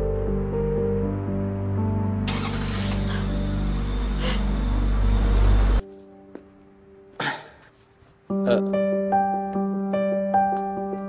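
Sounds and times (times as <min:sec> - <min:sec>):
soft background music: 0:00.0 - 0:11.0
car engine starting: 0:02.0 - 0:05.8.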